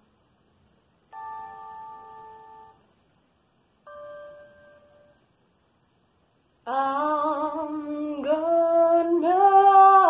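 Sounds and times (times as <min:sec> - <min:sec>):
keyboard chords: 0:01.1 - 0:02.8, 0:03.9 - 0:05.2.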